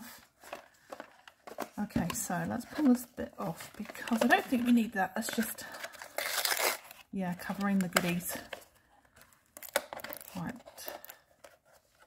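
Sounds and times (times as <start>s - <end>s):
card packaging tearing: 5.3s - 7.1s, 9.2s - 11.9s.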